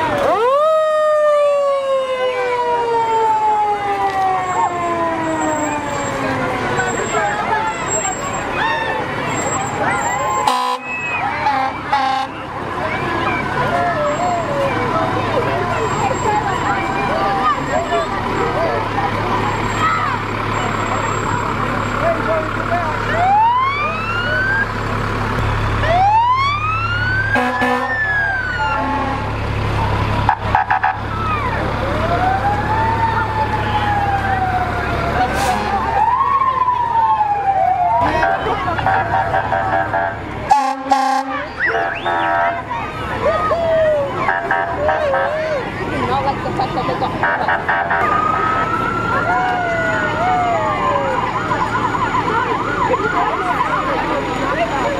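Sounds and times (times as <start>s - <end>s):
crowd chatter: 0.0s - 54.9s
fire engine rumble: 0.0s - 54.9s
fire truck sirens wailing: 0.0s - 54.9s.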